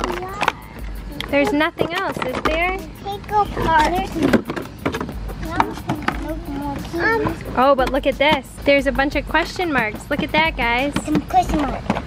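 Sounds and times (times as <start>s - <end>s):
voices talking indistinctly: 0.0s - 12.0s.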